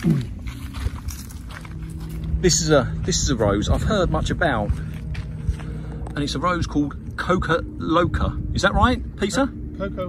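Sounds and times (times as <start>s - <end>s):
footsteps on dry earth: 0.0s - 7.1s
low rumble: 0.0s - 10.0s
steady low hum: 0.0s - 10.0s.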